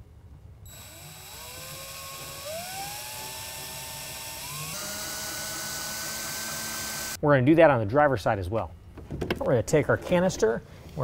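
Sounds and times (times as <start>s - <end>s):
cordless drill whining: 0.7s - 7.2s.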